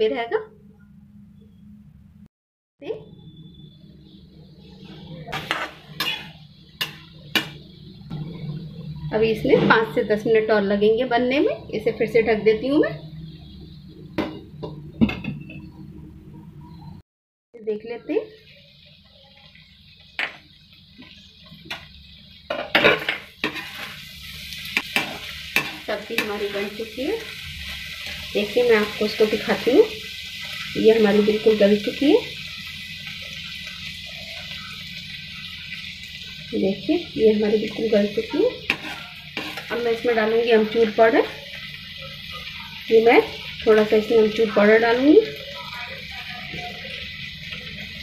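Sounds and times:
vegetables sizzling: 2.8 - 17.0, 17.6 - 48.0
spoon clinking and scraping metal pan: 5.3 - 7.6, 22.5 - 29.4, 37.7 - 40.1.

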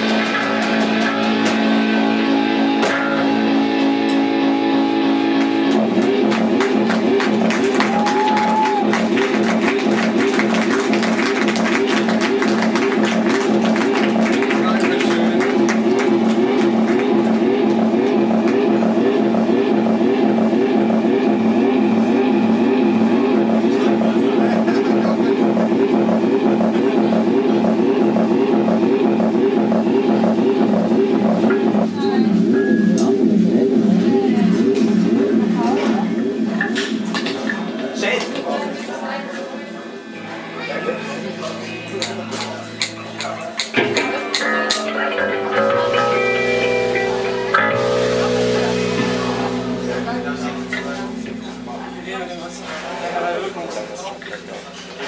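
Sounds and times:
drum kit: 0.0 - 38.1, 41.4 - 55.0
electric guitars: 0.0 - 38.4, 40.1 - 55.0.

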